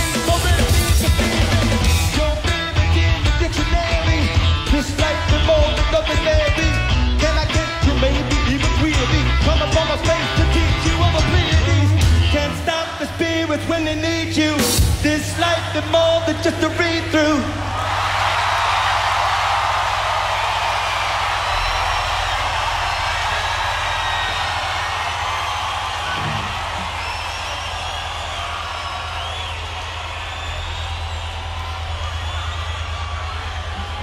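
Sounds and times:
crowd cheering and whistling: 0:00.0 - 0:34.0.

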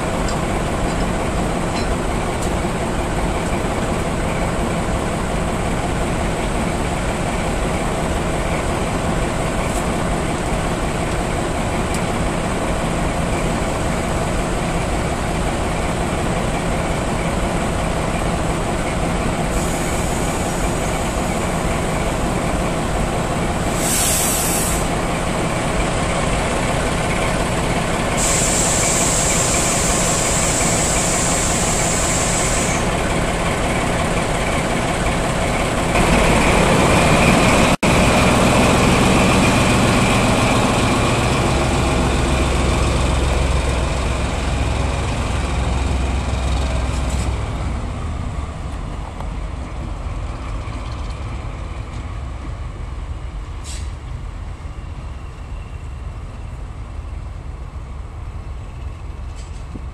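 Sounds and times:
diesel locomotive engines running: 0:00.0 - 0:59.9
locomotive engine low rumble: 0:00.0 - 0:59.9.

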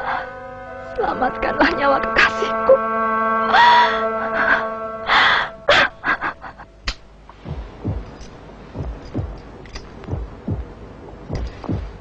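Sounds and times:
heartbeat thumps: 0:07.3 - 0:12.0.

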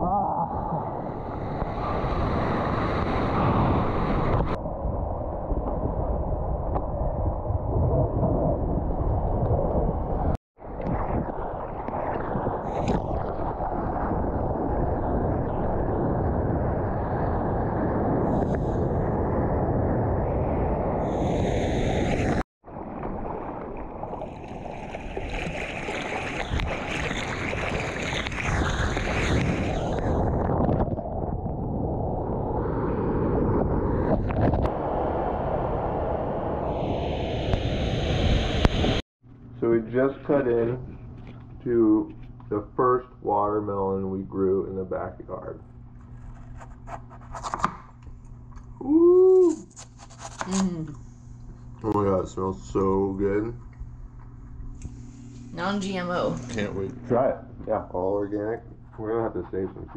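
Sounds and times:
ocean water rushing and sloshing: 0:00.0 - 0:39.0.

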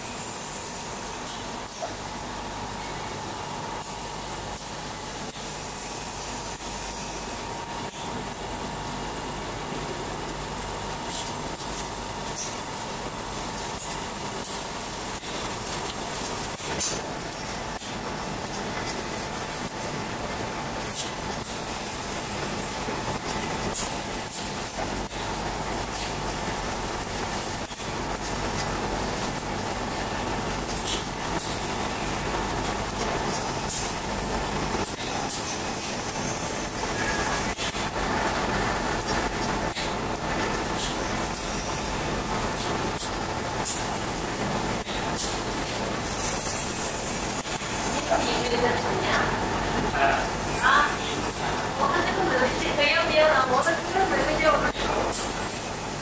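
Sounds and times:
laser cutting machine whirring: 0:00.0 - 0:56.0.

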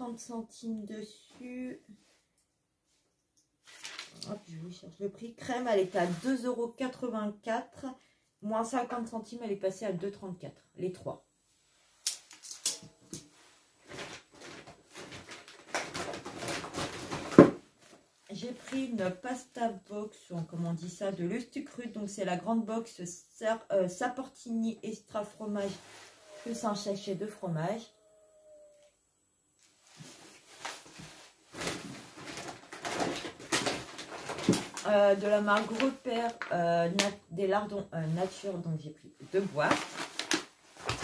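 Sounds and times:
bags and packaging rustling: 0:03.6 - 0:04.4, 0:12.1 - 0:19.2, 0:29.8 - 0:37.2, 0:39.2 - 0:41.0.

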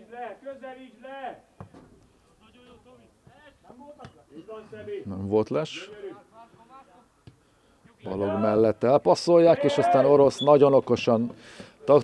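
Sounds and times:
players calling out: 0:08.0 - 0:10.8.

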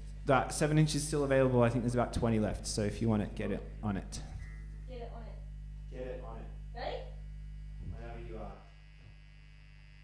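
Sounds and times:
electrical mains hum from amplifiers: 0:00.0 - 0:10.0.

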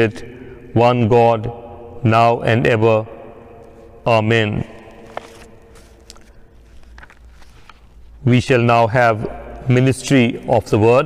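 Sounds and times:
low room hum: 0:00.0 - 0:11.0
book pages clicking and rustling: 0:04.9 - 0:08.1.

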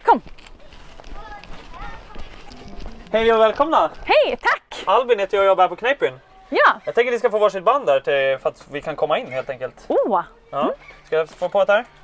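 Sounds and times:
running footsteps on paving stones: 0:00.1 - 0:04.5, 0:10.9 - 0:12.0
faint voices: 0:00.5 - 0:04.2.

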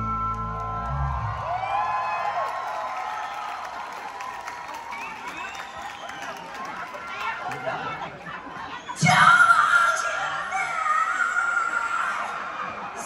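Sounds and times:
whistles from crowd: 0:00.0 - 0:06.6
audience cheering and applauding: 0:00.0 - 0:08.8.

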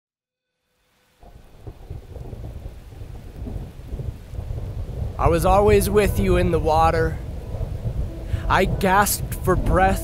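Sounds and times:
rain-like crackling patter: 0:00.7 - 0:10.0
low rumbling: 0:01.2 - 0:10.0.

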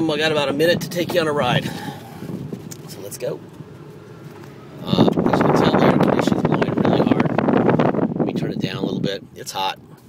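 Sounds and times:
wind noise on microphone: 0:04.8 - 0:09.3.

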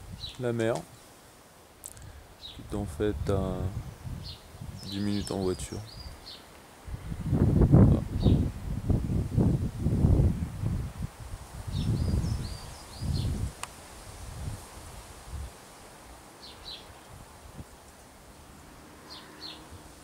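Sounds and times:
wind buffeting microphone: 0:00.0 - 0:00.4, 0:02.0 - 0:15.6
small bird chirping: 0:04.0 - 0:06.5, 0:11.7 - 0:13.5, 0:19.1 - 0:19.9.

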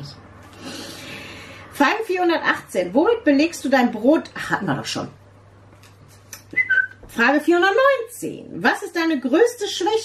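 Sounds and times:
faint steady hum: 0:00.0 - 0:10.0
two-note whistle: 0:06.6 - 0:07.0.

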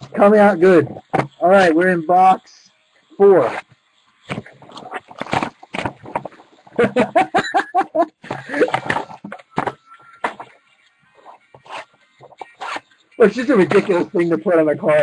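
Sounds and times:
card wrappers crinkling: 0:04.3 - 0:06.8
man laughing: 0:06.7 - 0:09.2.

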